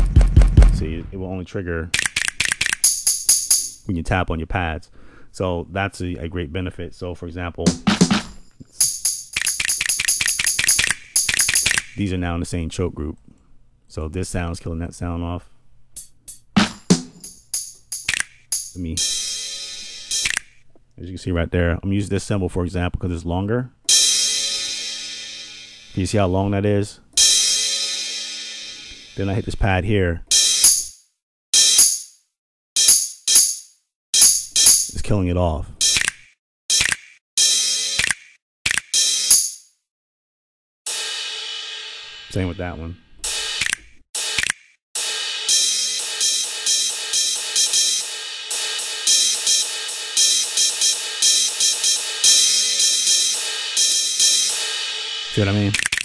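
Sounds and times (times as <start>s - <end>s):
sampled cymbal ringing: 17.0s - 20.2s, 23.9s - 26.1s, 27.2s - 29.3s, 40.9s - 42.6s, 45.0s - 55.4s.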